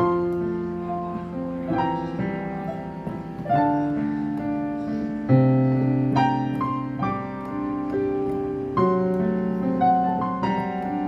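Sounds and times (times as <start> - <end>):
slow solo piano: 0.0 - 11.0.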